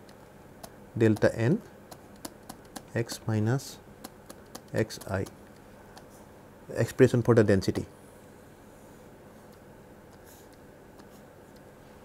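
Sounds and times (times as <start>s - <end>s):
low room hiss: 0.0s - 12.0s
stylus scratching on tablet: 4.3s - 5.4s.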